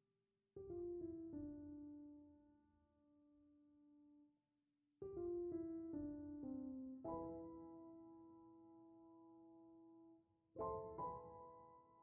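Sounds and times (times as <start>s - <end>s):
soft piano music: 0.6s - 4.4s, 5.0s - 12.0s.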